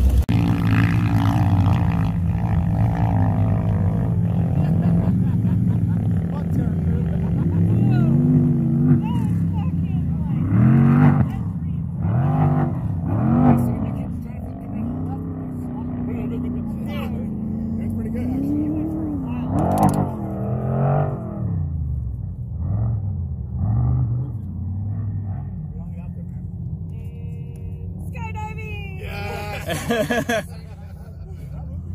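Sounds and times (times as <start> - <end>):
low engine hum: 0.0 - 31.9
off-road vehicle engines revving: 0.0 - 31.9.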